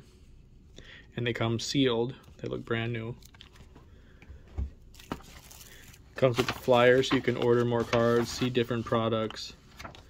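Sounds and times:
paper and cellophane crinkling: 0:04.9 - 0:10.0.

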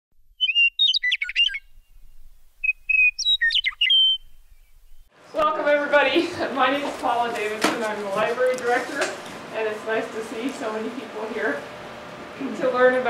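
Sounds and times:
songbird chirping and whistling: 0:00.3 - 0:05.1
person speaking: 0:05.3 - 0:11.6.

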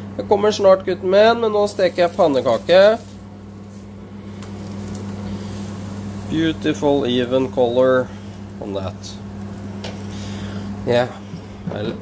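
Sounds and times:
steady low hum: 0:00.0 - 0:12.0
pancake frying in butter: 0:01.6 - 0:11.2.

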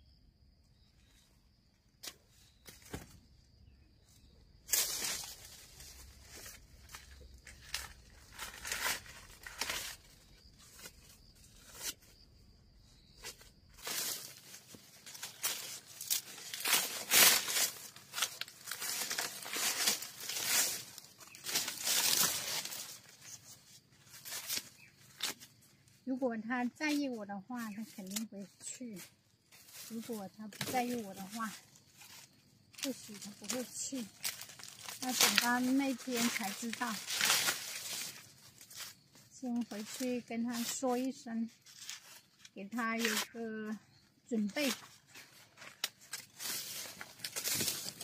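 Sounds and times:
dry corn husks rustling: 0:02.0 - 0:48.0.

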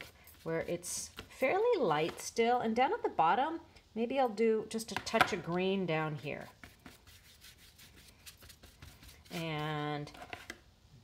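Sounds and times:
paintbrush rubbing on paper: 0:06.4 - 0:09.8.

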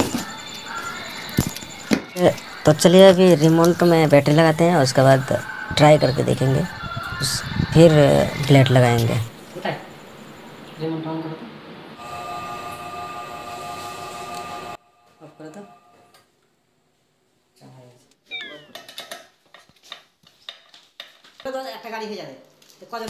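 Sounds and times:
steady hum of held tones: 0:00.0 - 0:16.2
cat meowing: 0:18.3 - 0:18.9.

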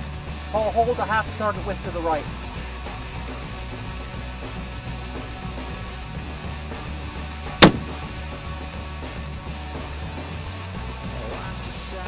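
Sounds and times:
rifle shot: 0:07.6 - 0:08.1.

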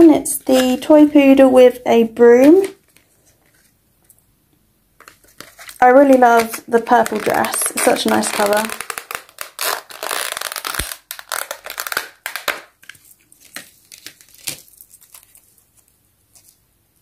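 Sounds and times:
plastic bag crinkling: 0:05.0 - 0:16.6.

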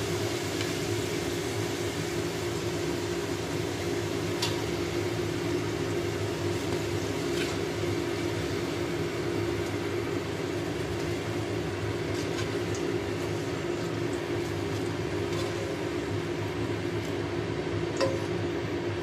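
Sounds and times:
extractor fan humming: 0:00.0 - 0:19.0.

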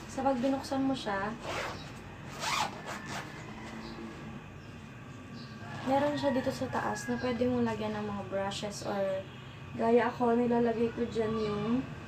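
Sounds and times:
zipper pulled open: 0:01.4 - 0:03.4.

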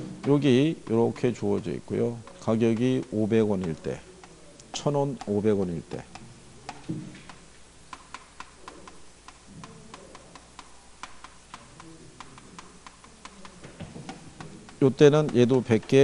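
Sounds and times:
chalk tapping on chalkboard: 0:00.0 - 0:16.0.

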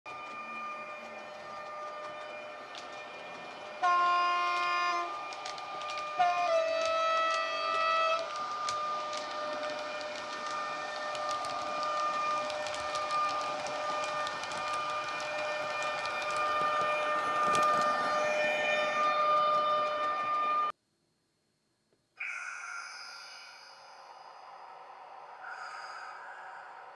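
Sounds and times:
train horn blasts: 0:03.7 - 0:09.9.

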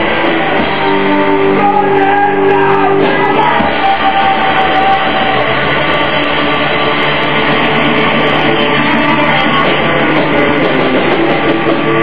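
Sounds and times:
punk rock band playing: 0:00.0 - 0:12.0
shouted vocals: 0:01.3 - 0:05.7.

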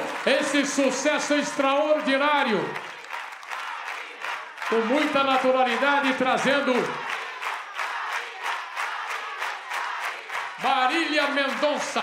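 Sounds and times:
audience applauding: 0:00.0 - 0:12.0
crowd noise: 0:00.0 - 0:12.0.

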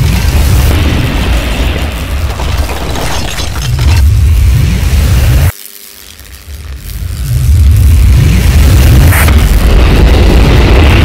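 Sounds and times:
sharp crackling burst: 0:00.0 - 0:11.0
heavy low rumble: 0:06.6 - 0:11.0.

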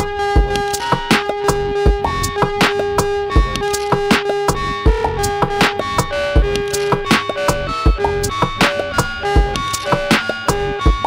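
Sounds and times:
kick drum: 0:00.0 - 0:00.7, 0:01.8 - 0:02.6, 0:03.3 - 0:03.7, 0:04.5 - 0:05.6, 0:06.4 - 0:06.6, 0:07.9 - 0:08.4, 0:09.3 - 0:09.7, 0:10.5 - 0:11.0
ticking hi-hats: 0:00.0 - 0:11.0.

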